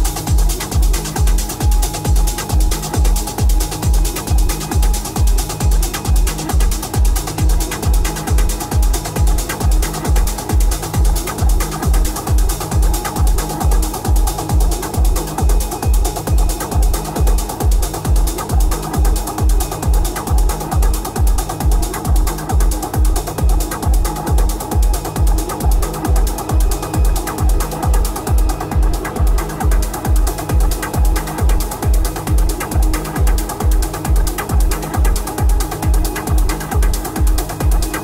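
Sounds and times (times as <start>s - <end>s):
techno kick drum: 0.0s - 38.0s.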